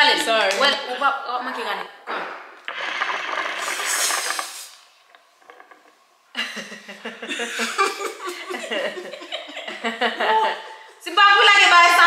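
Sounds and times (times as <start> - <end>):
hookah water bubbling: 2.6 - 6.3.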